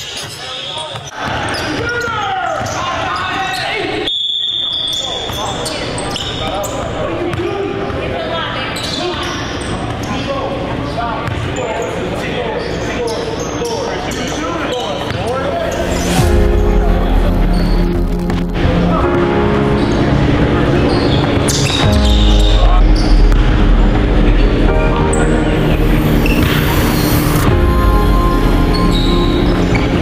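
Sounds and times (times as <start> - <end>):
voices echoing in gym: 0.0 - 30.0
referee's whistle blast: 4.0 - 5.3.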